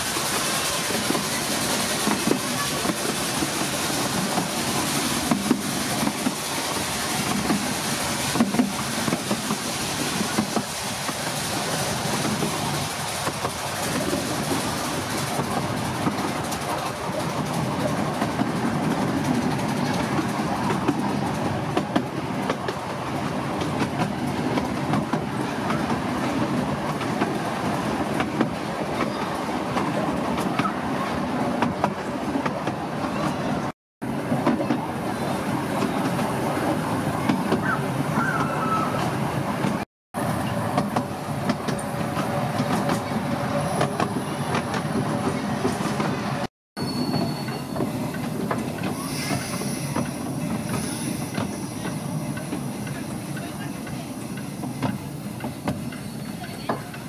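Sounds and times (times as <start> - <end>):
miniature train wheels rumbling: 0.0 - 33.5, 34.3 - 46.3, 46.9 - 57.0.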